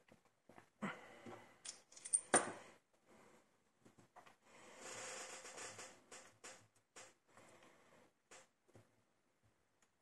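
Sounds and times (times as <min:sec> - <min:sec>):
faint scraping and rustling: 0:04.0 - 0:09.0.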